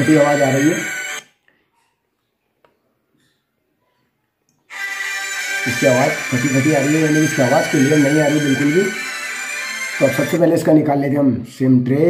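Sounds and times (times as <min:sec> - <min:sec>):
music: 0:00.0 - 0:01.2, 0:04.7 - 0:11.4.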